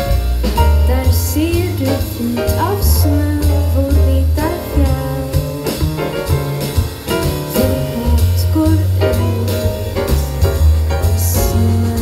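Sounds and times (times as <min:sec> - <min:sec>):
double bass notes: 0:00.0 - 0:12.0
drums with cymbals: 0:00.0 - 0:12.0
grand piano: 0:00.0 - 0:12.0.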